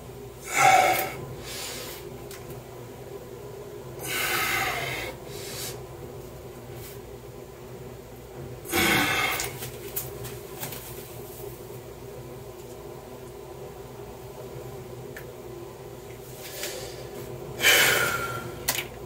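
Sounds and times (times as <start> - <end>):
steady low hum: 0.0 - 19.0
man breathing out hard: 4.0 - 5.8, 8.7 - 9.6, 16.6 - 18.6.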